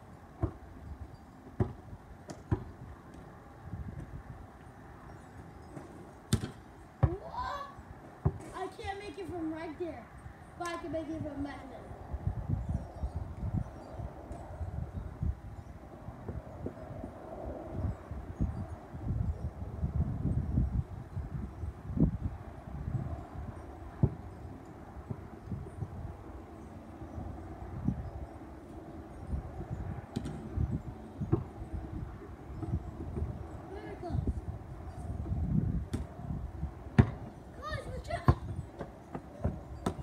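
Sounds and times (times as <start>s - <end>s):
wind rumbling on microphone: 0.0s - 40.0s
basketball thuds: 1.6s - 2.8s, 5.7s - 7.2s, 8.2s - 8.8s, 37.0s - 37.4s.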